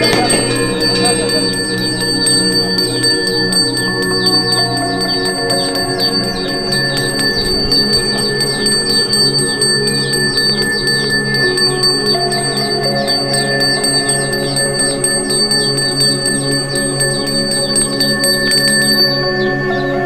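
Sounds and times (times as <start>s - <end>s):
handbell ringing rapidly: 0.0s - 19.2s
background music with low notes: 0.0s - 20.0s.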